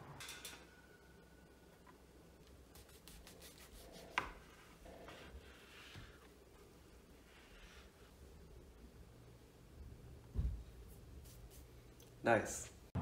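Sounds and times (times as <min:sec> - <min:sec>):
soft rubbing and scraping: 0:02.9 - 0:08.5.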